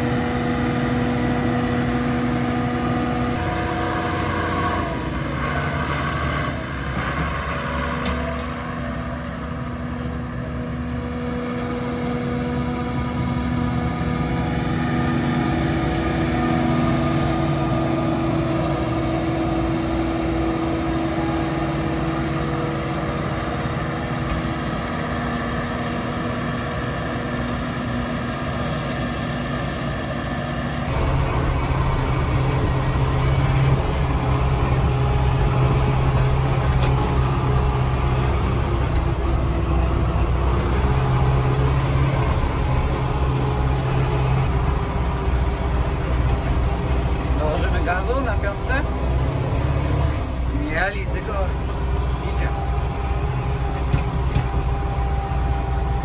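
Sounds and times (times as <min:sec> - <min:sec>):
diesel tractor engine from cab: 0:00.0 - 0:56.0
tractor running alongside: 0:00.0 - 0:56.0.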